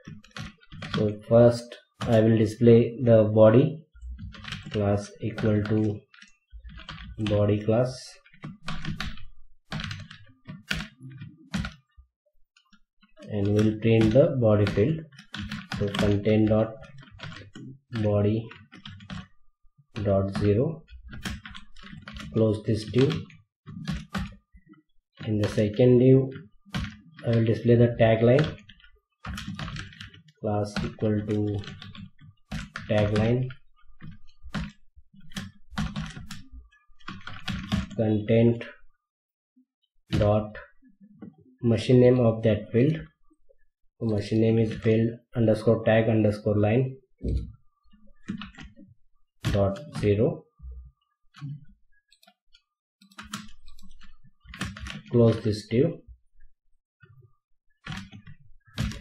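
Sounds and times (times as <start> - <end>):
typing on computer keyboard: 0.0 - 2.4, 4.1 - 12.0, 12.6 - 19.4, 20.0 - 38.0, 44.0 - 45.7, 47.2 - 56.0, 57.0 - 59.0.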